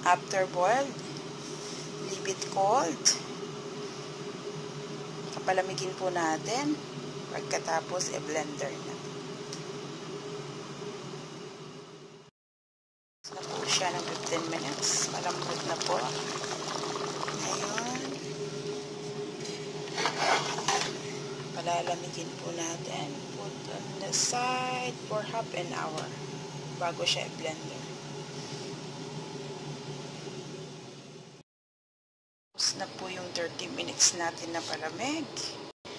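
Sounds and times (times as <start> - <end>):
low hum with hiss: 0.0 - 12.3, 13.3 - 31.4, 32.6 - 35.9
soup simmering with hiss: 13.3 - 18.6.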